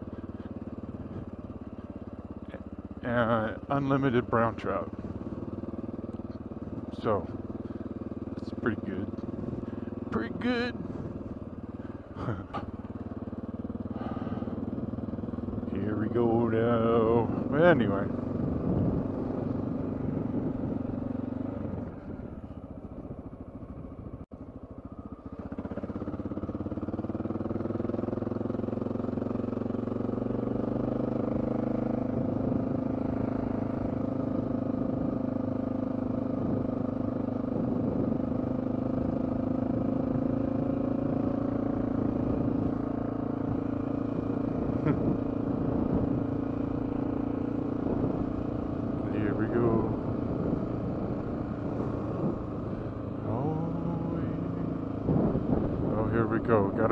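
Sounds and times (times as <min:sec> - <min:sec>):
motorcycle engine running: 0:00.0 - 0:56.9.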